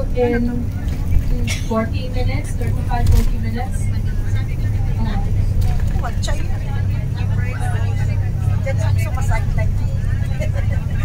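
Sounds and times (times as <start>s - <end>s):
bus engine drone and road noise: 0.0s - 11.0s
passengers murmuring: 0.0s - 11.0s.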